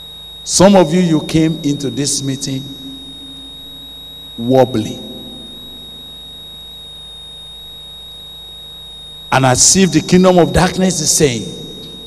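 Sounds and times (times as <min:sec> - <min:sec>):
high-pitched electrical whine: 0:00.0 - 0:12.0
low mains hum: 0:00.0 - 0:12.0.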